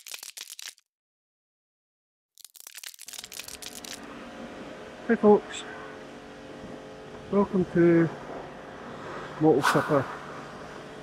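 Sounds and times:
crackling sound effect: 0.0 - 0.8, 2.4 - 4.1
electric buzzing: 2.5 - 5.2.

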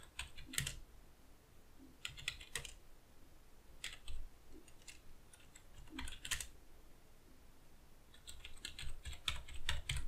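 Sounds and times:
faint computer keyboard typing: 0.0 - 0.8, 2.0 - 2.8, 3.8 - 6.6, 8.1 - 10.0.

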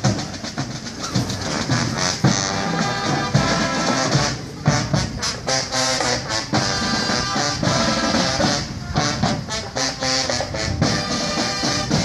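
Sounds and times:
snare drum strokes: 0.0 - 12.0.

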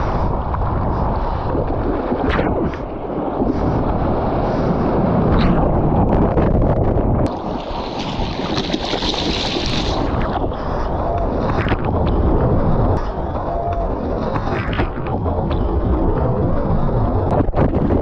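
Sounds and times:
water rushing over camera: 0.0 - 18.0
wind buffeting microphone: 0.0 - 18.0
seawater sloshing and splashing: 7.3 - 11.9.

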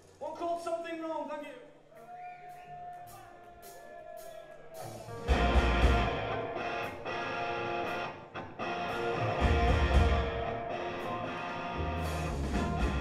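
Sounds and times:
live rock band playing: 3.6 - 13.0
heavy bass: 4.9 - 7.0, 8.8 - 13.0
electric guitar: 5.0 - 13.0.

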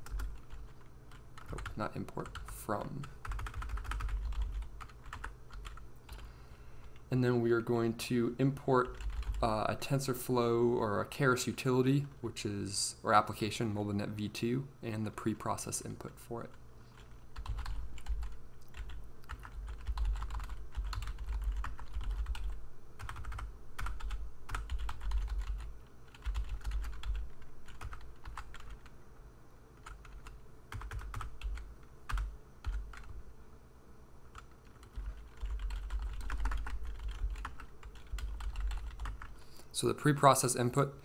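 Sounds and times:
computer keyboard typing: 0.0 - 6.3, 8.8 - 9.6, 16.4 - 28.9, 29.8 - 33.2, 34.3 - 39.4.

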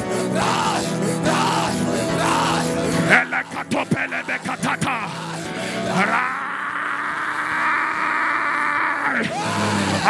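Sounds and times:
man's raspy amplified cry: 2.3 - 10.0.

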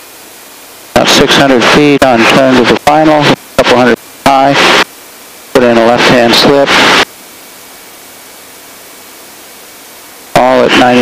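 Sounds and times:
intercom hiss: 0.8 - 7.1, 7.8 - 11.0.

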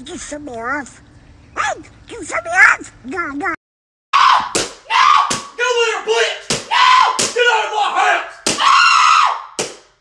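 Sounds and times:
sharp slap-like hits: 4.4 - 5.6, 6.4 - 7.4, 8.4 - 8.7, 9.6 - 10.0.

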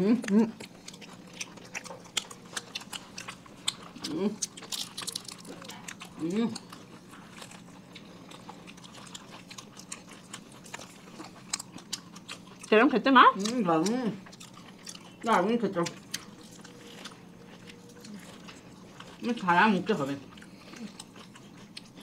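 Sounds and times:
people biting and chewing food: 0.0 - 22.0.

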